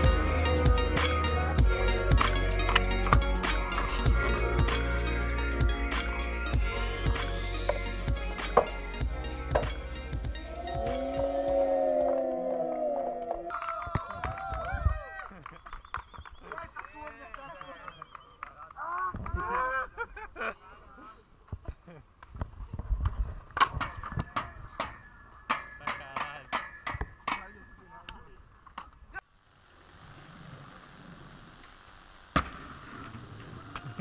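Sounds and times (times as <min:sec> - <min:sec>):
outdoor noise: 0:00.0 - 0:34.0
voices shouting: 0:10.3 - 0:13.6.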